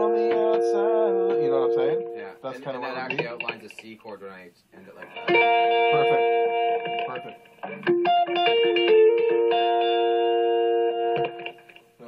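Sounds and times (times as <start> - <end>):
guitar chord ringing: 0.0 - 3.6, 5.0 - 12.0
short picked guitar notes: 0.0 - 3.8, 5.0 - 11.8.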